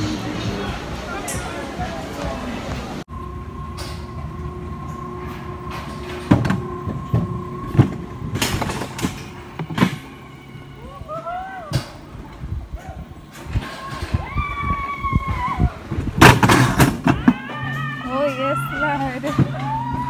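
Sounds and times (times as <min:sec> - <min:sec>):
bobsled running gear whine: 0:00.0 - 0:20.0.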